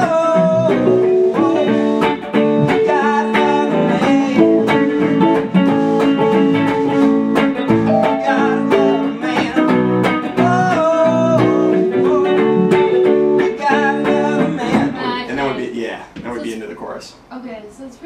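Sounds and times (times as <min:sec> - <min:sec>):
man singing: 0:00.0 - 0:07.2, 0:07.8 - 0:15.8
electric guitar: 0:00.0 - 0:15.2
keyboard: 0:07.7 - 0:14.9.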